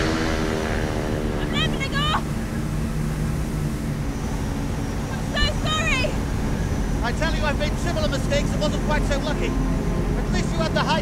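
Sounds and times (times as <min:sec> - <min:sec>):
biplane engine running: 0:00.0 - 0:11.0.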